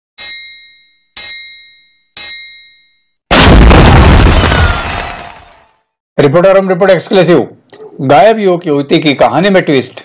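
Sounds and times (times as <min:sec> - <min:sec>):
bright metallic dings: 0:00.2 - 0:03.2.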